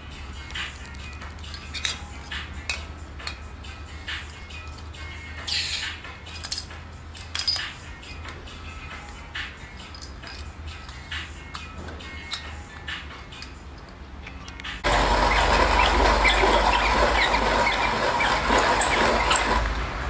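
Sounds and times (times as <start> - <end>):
metal clicks and clinks: 0.8 - 3.4, 6.3 - 8.4, 9.8 - 11.7.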